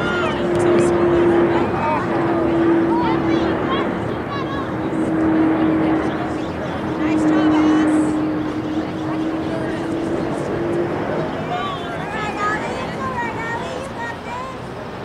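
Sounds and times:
held hum: 0.0s - 14.0s
distant voices calling: 0.0s - 15.0s
steady drone of noise: 0.0s - 15.0s.

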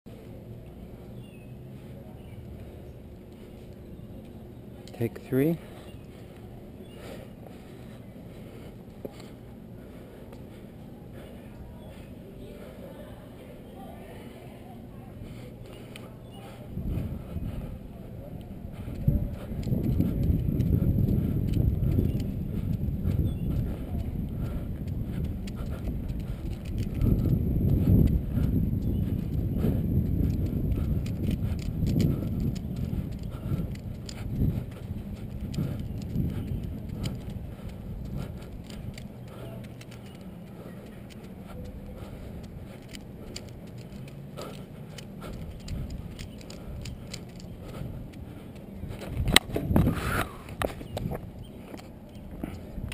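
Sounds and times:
wheel rumble on asphalt: 15.2s - 52.9s
wind on microphone: 16.5s - 52.9s
rubik's cube clicks: 42.4s - 49.6s.

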